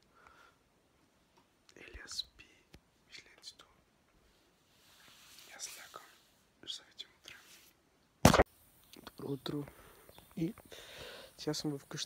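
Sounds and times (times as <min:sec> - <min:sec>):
man whispering: 0:01.7 - 0:03.9, 0:05.4 - 0:07.6, 0:11.3 - 0:12.0.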